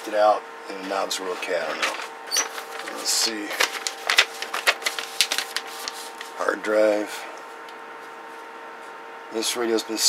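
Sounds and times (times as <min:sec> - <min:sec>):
paper crackling: 0:02.4 - 0:06.5.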